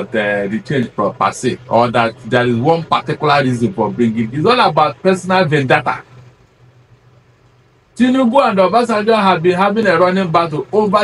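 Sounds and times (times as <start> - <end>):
faint background hiss: 0.0 - 11.0
low hum: 0.0 - 11.0.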